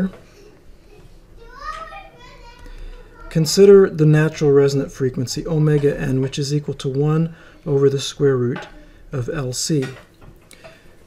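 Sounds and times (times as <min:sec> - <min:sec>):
young child's voice: 0:00.4 - 0:03.5.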